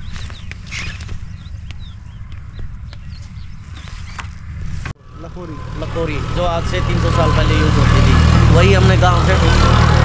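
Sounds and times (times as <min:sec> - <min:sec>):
man's voice: 0:05.1 - 0:10.0.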